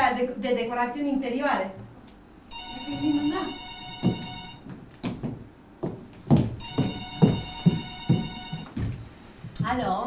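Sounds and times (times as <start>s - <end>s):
telephone ringing: 2.5s - 4.7s, 6.6s - 8.8s.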